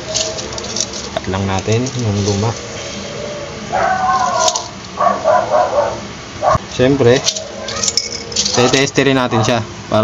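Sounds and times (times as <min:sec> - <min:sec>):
animal calling: 0:02.3 - 0:06.6.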